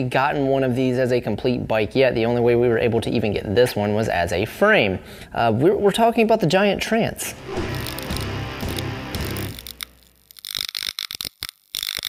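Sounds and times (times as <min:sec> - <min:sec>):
intro music sting: 0:07.3 - 0:09.7
sharp crackling clicks: 0:07.8 - 0:12.0.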